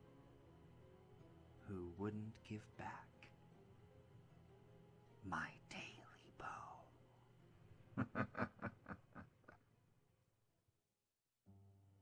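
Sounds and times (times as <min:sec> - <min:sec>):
person whispering: 0:02.6 - 0:03.3, 0:05.2 - 0:07.0.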